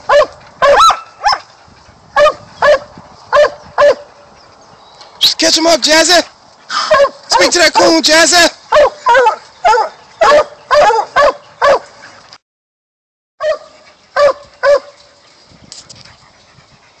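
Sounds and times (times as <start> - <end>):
dog barking: 0.0 - 1.5, 2.2 - 4.1, 6.8 - 8.0, 8.7 - 11.8, 13.4 - 14.9.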